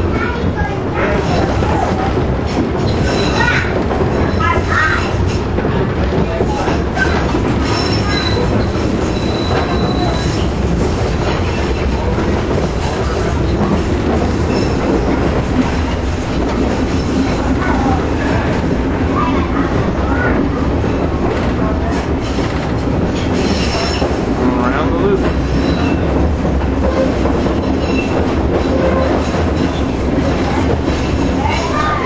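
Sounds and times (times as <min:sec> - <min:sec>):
streetcar wheels rumbling and rattling: 0:00.0 - 0:32.0
high wheel squeal: 0:07.6 - 0:10.6, 0:26.9 - 0:30.0.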